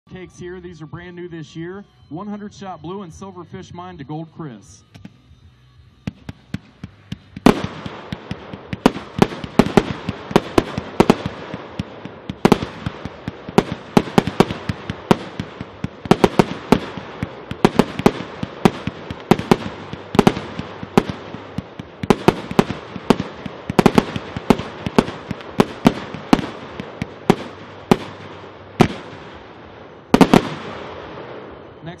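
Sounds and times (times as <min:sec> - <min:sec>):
fireworks shots: 0:06.0 - 0:32.0.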